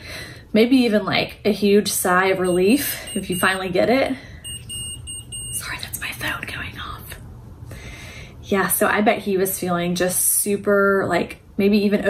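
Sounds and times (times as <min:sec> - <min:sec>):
short high electronic beeps: 0:04.4 - 0:05.6.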